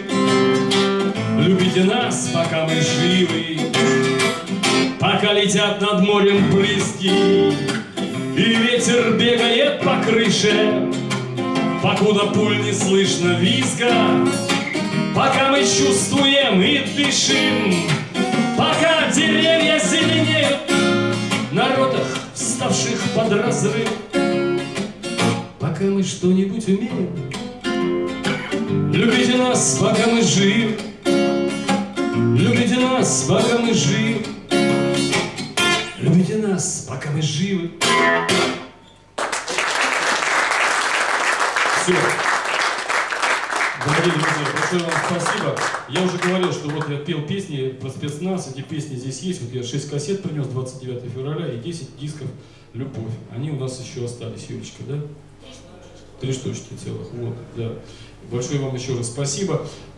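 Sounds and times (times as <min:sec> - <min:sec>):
acoustic guitar: 0:00.0 - 0:40.0
man singing: 0:01.2 - 0:04.1, 0:05.0 - 0:11.1, 0:11.7 - 0:14.4, 0:15.1 - 0:24.0, 0:25.6 - 0:27.2, 0:28.9 - 0:30.9, 0:32.2 - 0:34.4
audience applause: 0:39.2 - 0:46.9.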